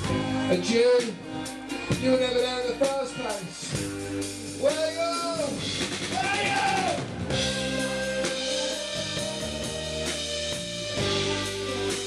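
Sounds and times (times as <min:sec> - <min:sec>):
bass guitar notes: 0:00.0 - 0:12.0
drum kit beat: 0:00.0 - 0:12.0
guitar: 0:00.0 - 0:12.0.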